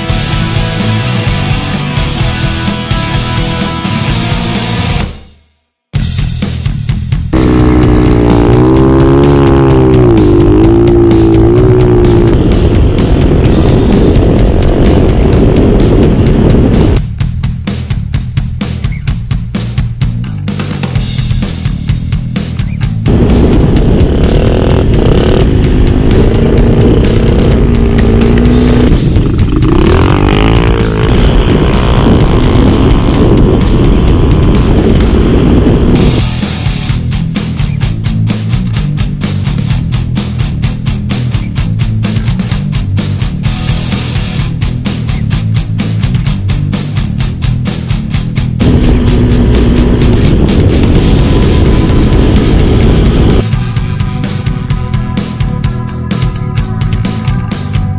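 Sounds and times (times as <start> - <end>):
loud rock music: 0.0 - 57.9
dirt bike engine revving: 7.3 - 17.0, 22.9 - 37.0, 48.3 - 57.6.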